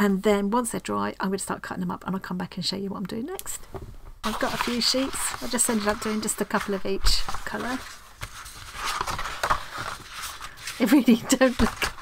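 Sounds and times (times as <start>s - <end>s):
paper rustling and sliding: 4.2s - 12.0s.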